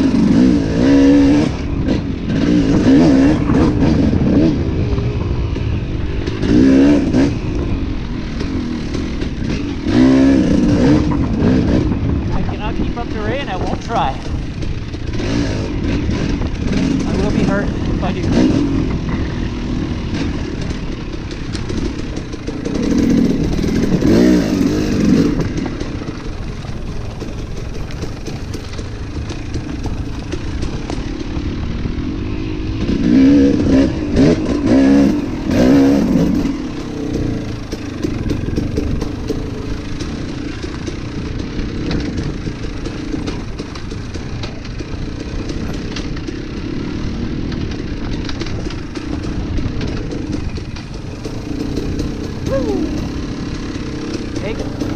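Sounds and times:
dirt bike engine revving: 0.0 - 54.9.

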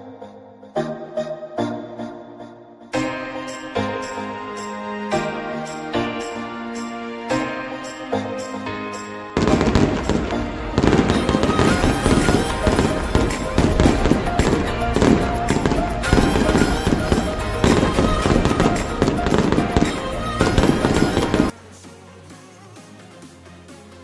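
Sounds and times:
loud intro music with percussion: 9.4 - 21.5.

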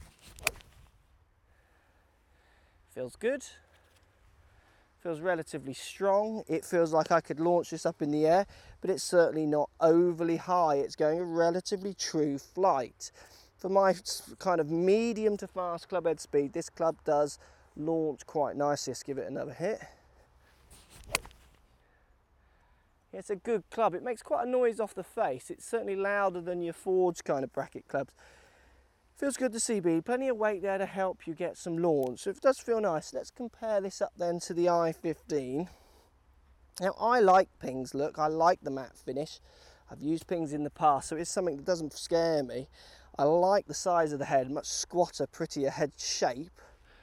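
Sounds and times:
golf club swish: 0.0 - 0.9, 20.7 - 21.6
golf ball impact click: 21.0 - 21.4.

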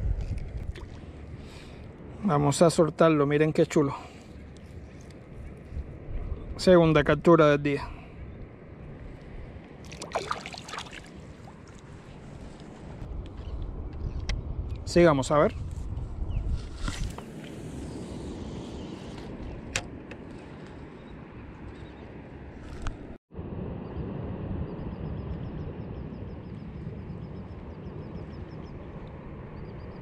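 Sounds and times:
wind buffeting microphone: 0.0 - 2.2, 4.4 - 30.0.

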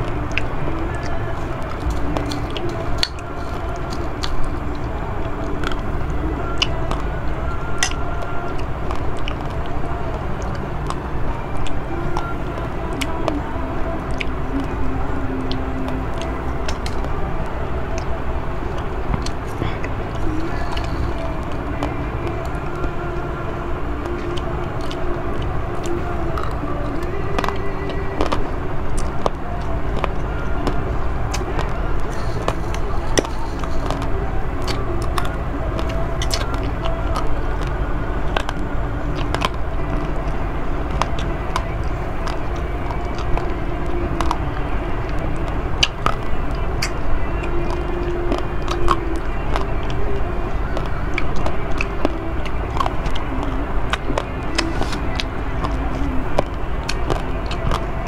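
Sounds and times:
steady low rumble: 0.0 - 58.0.

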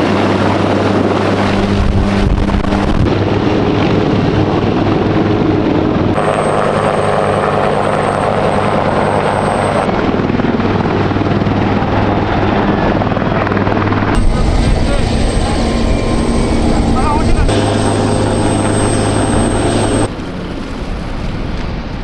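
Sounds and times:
helicopter rotor noise: 0.0 - 22.0
helicopter turbine whine: 0.0 - 22.0.

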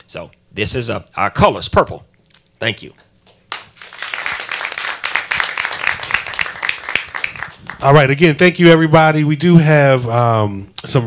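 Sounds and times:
audience applauding: 3.5 - 8.0.

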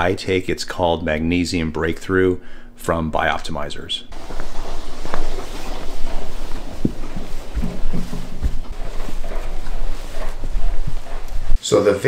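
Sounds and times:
footfall knocks: 4.1 - 11.5.

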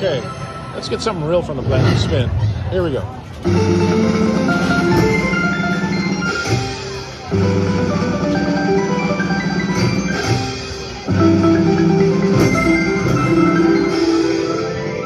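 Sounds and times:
slot machine chiming spin tune: 3.4 - 15.0.

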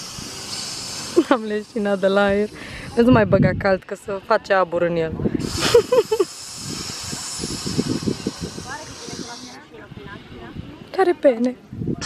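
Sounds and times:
air hissing through valve: 0.0 - 3.2, 5.4 - 9.6.

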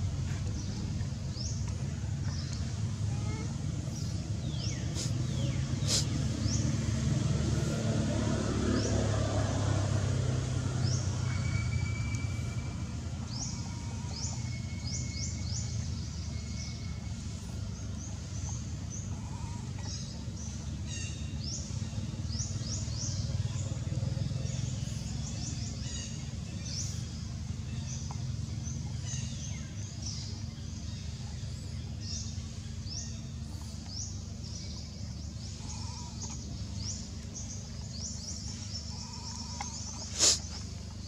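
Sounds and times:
birds chirping: 0.0 - 41.0.

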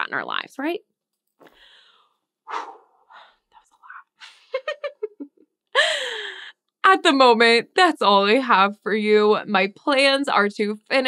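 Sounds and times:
woman whispering: 3.5 - 4.2.

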